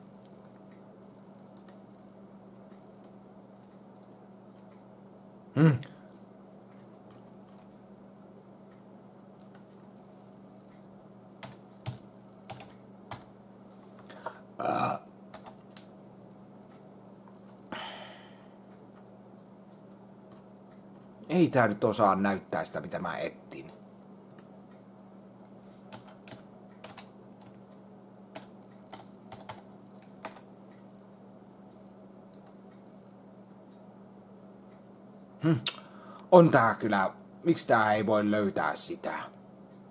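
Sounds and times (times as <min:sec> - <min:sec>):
ceiling fan hum: 0:00.0 - 0:39.9
keyboard and mouse clicks: 0:01.6 - 0:01.8, 0:06.8 - 0:07.8, 0:09.4 - 0:09.9, 0:25.9 - 0:27.6, 0:32.3 - 0:32.6
keyboard keys clicking: 0:06.8 - 0:07.8, 0:11.4 - 0:13.3, 0:25.9 - 0:27.6, 0:28.4 - 0:30.5.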